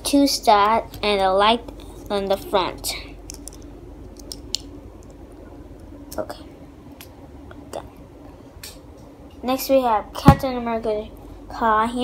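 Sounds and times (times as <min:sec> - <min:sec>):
steady low hum: 0:00.0 - 0:12.0
plastic pieces clicking together: 0:03.3 - 0:04.6.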